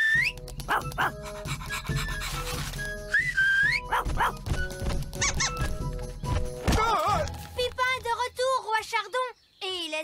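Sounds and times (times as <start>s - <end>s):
light cartoon music: 0.0s - 8.9s
cartoon dog-like barking: 3.9s - 4.4s.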